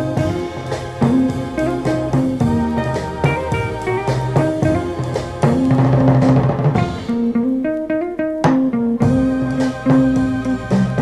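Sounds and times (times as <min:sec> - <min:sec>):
drum roll: 0:00.0 - 0:11.0
electric guitar: 0:00.0 - 0:11.0
rock and roll music: 0:00.0 - 0:11.0.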